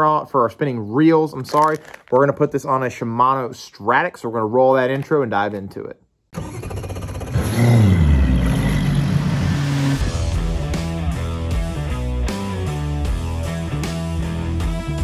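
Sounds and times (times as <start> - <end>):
engine revving: 6.4 - 11.1
rock music with steady beat: 10.0 - 15.0.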